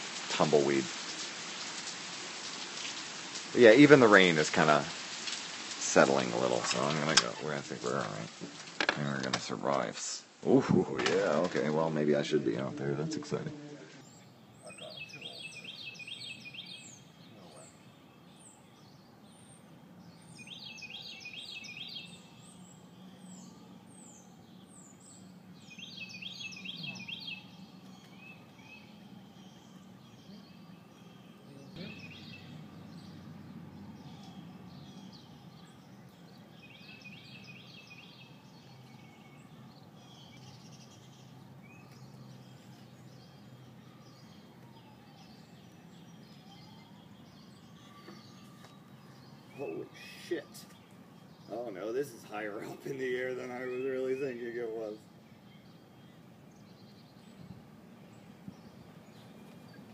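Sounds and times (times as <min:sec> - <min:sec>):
low outdoor background noise: 0:00.0 - 0:59.9
songbird singing: 0:00.0 - 0:59.9.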